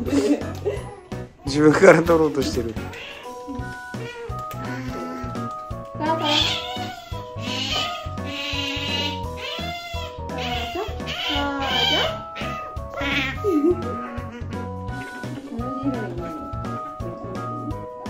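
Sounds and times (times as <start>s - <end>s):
background music with beat: 2.0s - 18.0s
otter high-pitched squealing: 2.8s - 15.3s.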